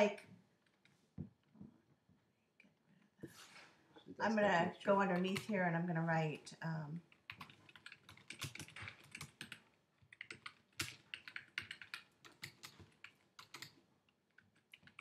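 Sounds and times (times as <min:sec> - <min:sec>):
typing on keyboard: 0:07.0 - 0:15.0.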